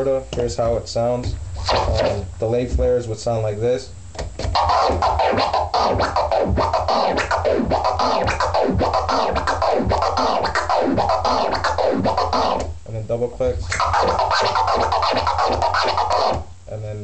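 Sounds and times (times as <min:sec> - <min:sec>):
backing beat: 0:00.0 - 0:16.7
vinyl record scratching: 0:00.0 - 0:17.0.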